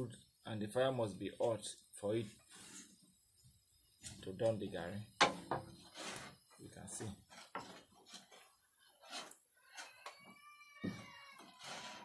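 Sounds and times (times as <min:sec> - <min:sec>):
wooden paddle scraping metal pan: 0:05.2 - 0:09.4, 0:11.4 - 0:12.0.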